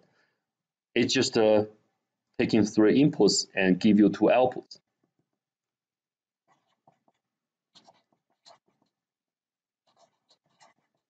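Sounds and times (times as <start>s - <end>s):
marker writing on paper: 6.4s - 9.1s, 9.8s - 11.0s.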